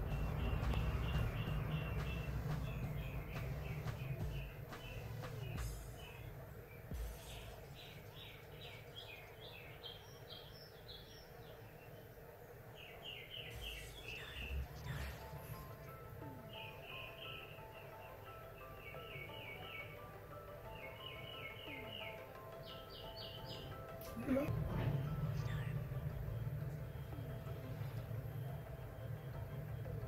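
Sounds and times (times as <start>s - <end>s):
low steady hum: 0.0s - 20.8s, 23.6s - 30.0s
small bird chirping: 0.0s - 24.0s.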